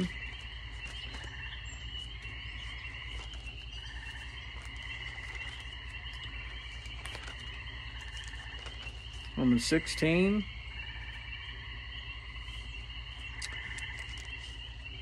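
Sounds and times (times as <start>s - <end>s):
chorus of calling animals: 0.0s - 15.0s
low steady hum: 0.0s - 15.0s.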